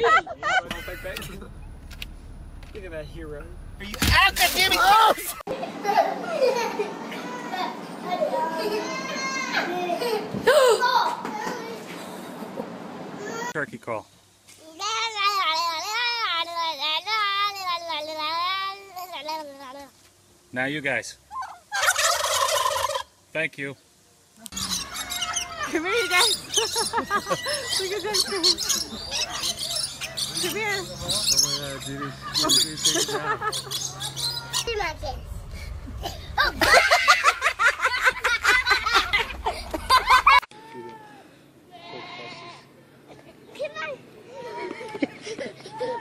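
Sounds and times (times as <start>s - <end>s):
faint steady hum: 0.0s - 7.6s
turkeys gobbling: 21.3s - 23.2s, 24.5s - 34.8s.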